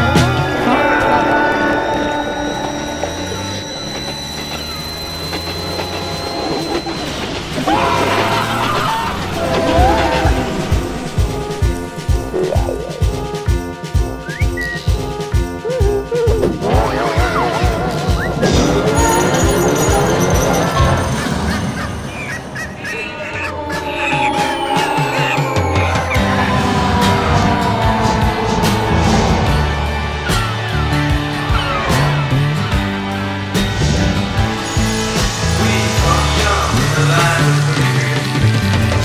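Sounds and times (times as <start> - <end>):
high whine: 0.0 - 14.9
music: 0.0 - 39.0.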